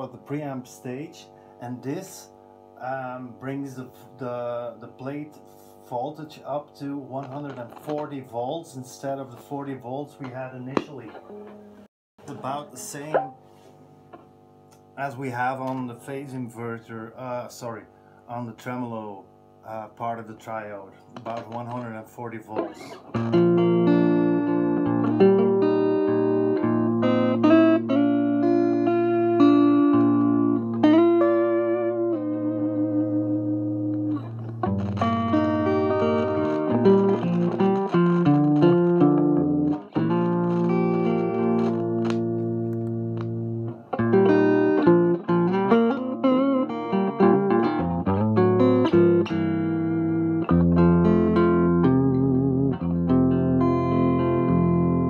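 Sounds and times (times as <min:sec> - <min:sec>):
electric guitar through tube amp: 0:00.0 - 0:13.4, 0:19.8 - 0:55.0.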